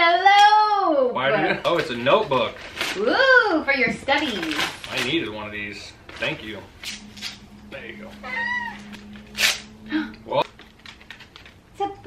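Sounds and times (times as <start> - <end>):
paper rustling: 4.1 - 7.4
toddler squealing: 8.2 - 9.4.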